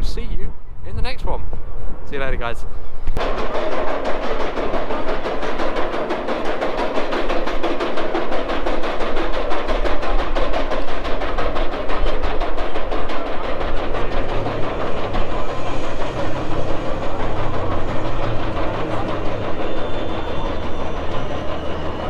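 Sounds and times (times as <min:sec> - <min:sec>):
rhythmic music: 0:03.2 - 0:22.0
roller coaster climbing chain lift: 0:03.2 - 0:22.0.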